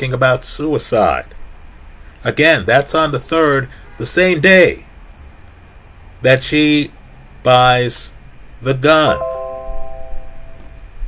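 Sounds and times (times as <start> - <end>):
person speaking: 8.7 - 9.6
bell-like chime: 9.1 - 10.7.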